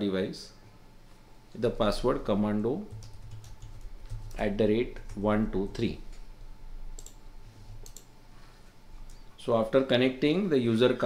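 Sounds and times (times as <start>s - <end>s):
computer mouse clicking: 7.0s - 7.2s, 7.8s - 8.1s.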